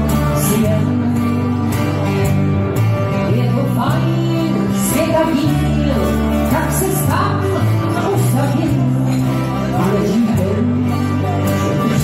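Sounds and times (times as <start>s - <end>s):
acoustic guitars: 0.0s - 12.0s
held bass notes: 0.0s - 12.0s.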